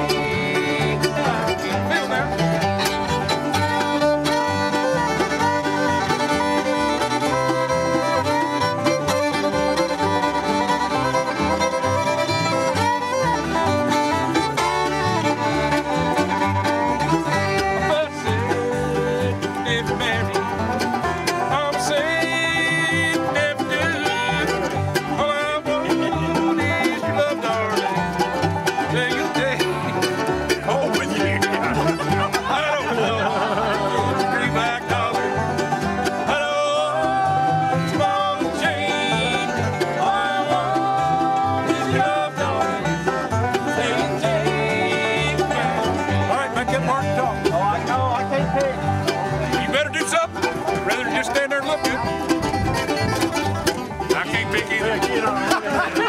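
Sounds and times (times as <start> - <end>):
acoustic guitar picking: 0.0 - 56.0
mandolin picking: 0.0 - 56.0
plucked upright bass: 0.0 - 56.0.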